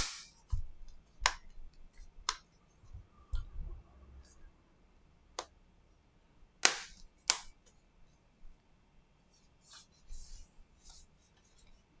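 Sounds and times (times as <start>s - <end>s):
sharp plastic snaps: 0.0s - 1.5s, 6.6s - 7.6s
handling rubs: 9.3s - 12.0s.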